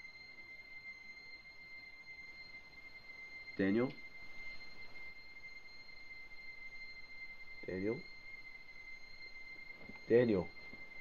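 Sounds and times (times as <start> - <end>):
fainter higher tone: 0.0 - 11.0
high-pitched ringing tone: 0.0 - 11.0.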